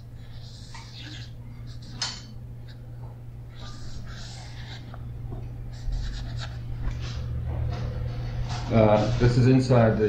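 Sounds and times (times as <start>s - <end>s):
steady low hum: 0.0s - 10.0s
pen scratching on paper: 3.6s - 4.9s.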